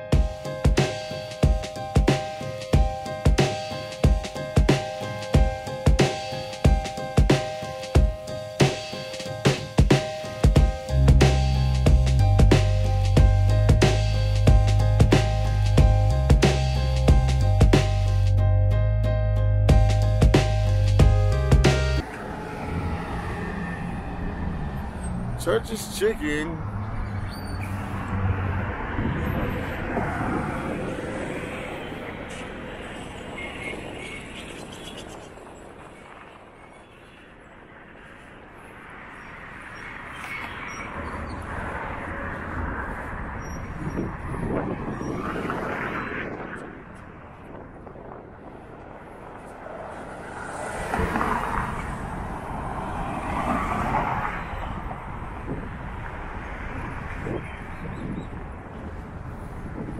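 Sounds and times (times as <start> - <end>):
cars passing by: 0.0 - 59.9.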